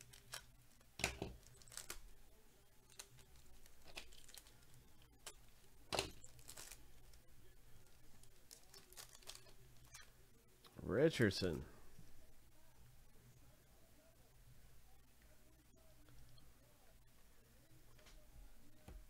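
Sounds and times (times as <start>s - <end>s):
foil wrapper rustling: 0.0s - 0.5s, 1.2s - 2.1s, 2.8s - 5.4s, 6.0s - 7.2s, 7.9s - 10.0s
foil wrapper tearing: 0.0s - 0.5s, 1.3s - 2.0s, 2.8s - 4.7s, 6.0s - 6.9s, 8.1s - 10.0s.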